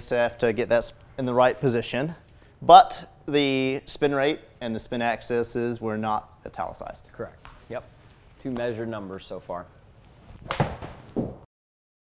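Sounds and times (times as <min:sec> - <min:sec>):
ball hitting impact screen: 0:10.4 - 0:11.5.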